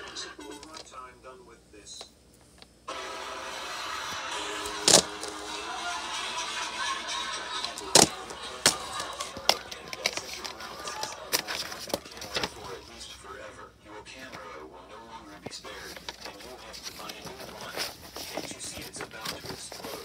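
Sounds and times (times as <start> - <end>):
background music: 2.9 - 11.3
plastic case clicking and snapping: 7.9 - 10.5.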